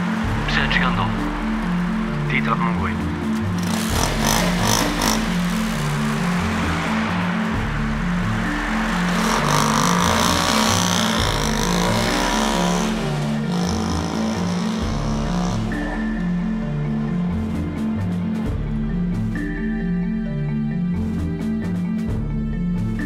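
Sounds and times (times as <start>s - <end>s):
background music with bass line: 0.0s - 23.0s
scooter engine revving: 3.3s - 17.6s.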